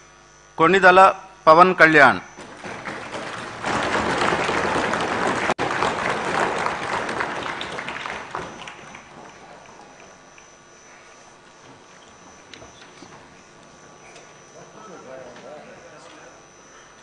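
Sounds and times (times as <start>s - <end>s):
applause in a chamber: 2.4s - 10.5s.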